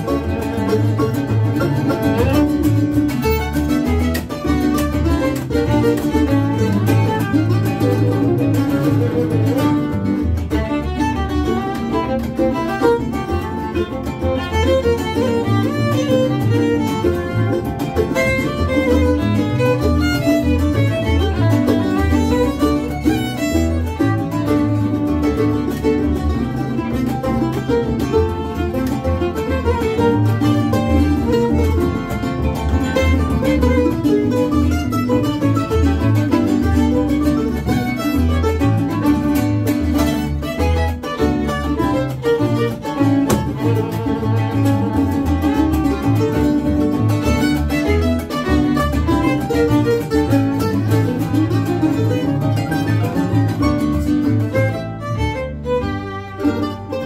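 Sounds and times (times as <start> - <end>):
bowed fiddle: 0.0 - 57.0
cuatro strumming: 0.0 - 57.0
mandolin: 0.0 - 57.0
upright bass line: 0.0 - 57.0.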